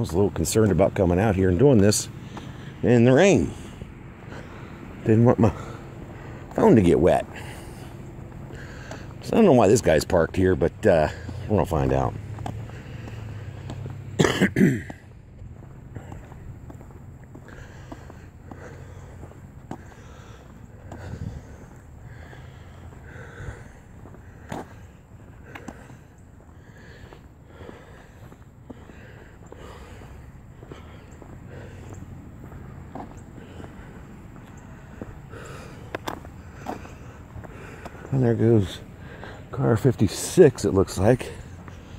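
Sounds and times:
footsteps on pavement: 0:00.0 - 0:41.9
low rumble of traffic: 0:00.0 - 0:41.9
man clearing his throat: 0:14.1 - 0:15.0.

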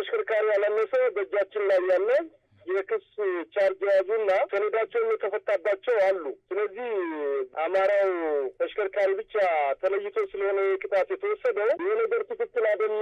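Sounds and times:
person talking on phone: 0:00.0 - 0:13.0.

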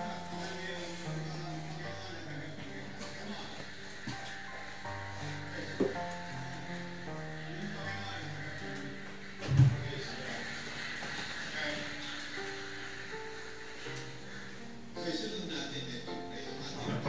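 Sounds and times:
background music with held notes: 0:00.0 - 0:17.0.

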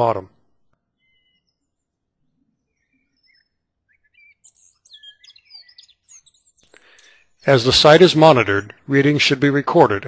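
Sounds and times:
small birds chirping: 0:00.0 - 0:09.7.

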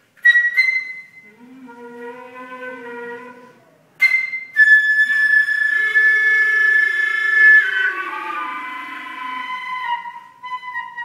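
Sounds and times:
low wind instrument tone: 0:00.2 - 0:11.0
high flute note: 0:00.3 - 0:11.0.

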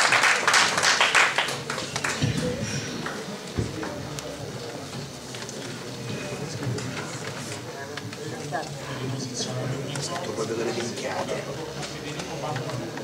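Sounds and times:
low murmuring voices: 0:00.0 - 0:13.0.

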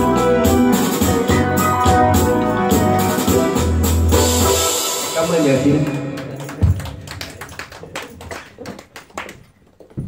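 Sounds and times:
sparse applause: 0:05.1 - 0:09.4.

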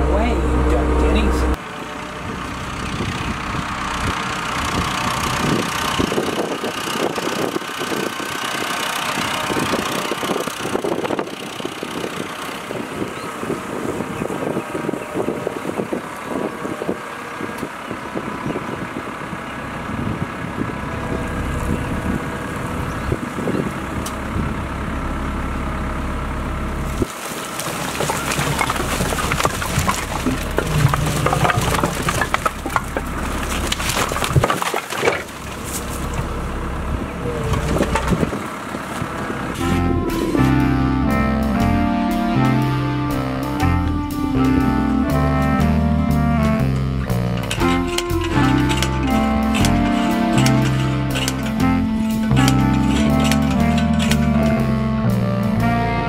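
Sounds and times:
tractor engine running: 0:00.0 - 0:56.0
branches and firewood tumbling: 0:26.9 - 0:36.8, 0:37.4 - 0:39.8, 0:46.6 - 0:54.7.

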